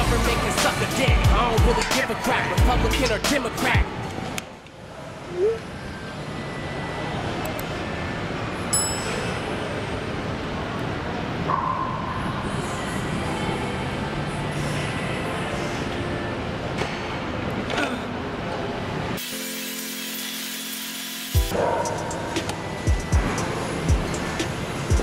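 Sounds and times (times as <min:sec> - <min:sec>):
gym hall background noise: 0:00.0 - 0:19.2, 0:21.4 - 0:25.0.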